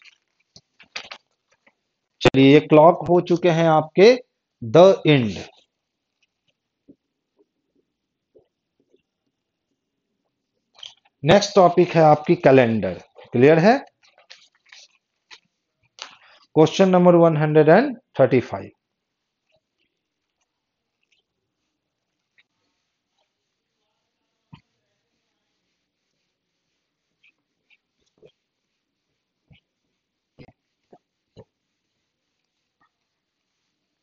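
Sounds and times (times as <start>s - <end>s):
duster rubbing on whiteboard: 19.1s - 34.0s.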